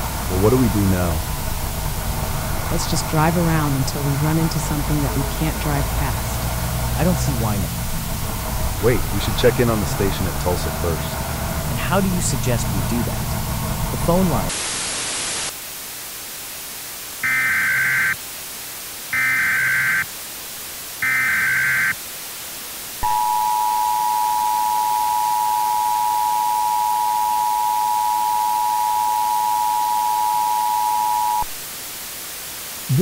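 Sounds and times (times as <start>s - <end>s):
faint hiss: 0.0s - 17.2s
burst of static: 0.0s - 19.2s
shrill digital data tone bursts: 23.0s - 31.5s
two-tone attention signal: 23.0s - 31.6s.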